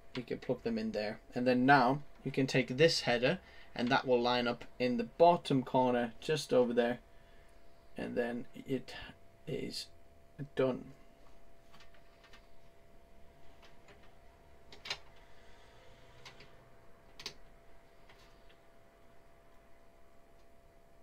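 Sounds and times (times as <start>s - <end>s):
faint steady hum: 0.0s - 21.0s.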